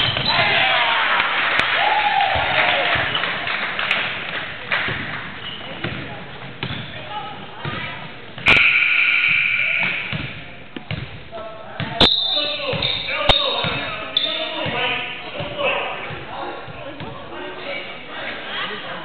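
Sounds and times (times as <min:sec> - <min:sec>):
people talking and shouting: 0:00.0 - 0:19.0
basketball bouncing on wooden floor: 0:05.7 - 0:07.0, 0:09.8 - 0:11.2.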